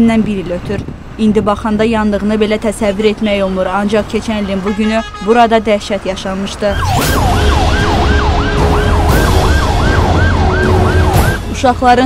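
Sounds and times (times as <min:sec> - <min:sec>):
emergency siren yelping: 0:06.6 - 0:11.6.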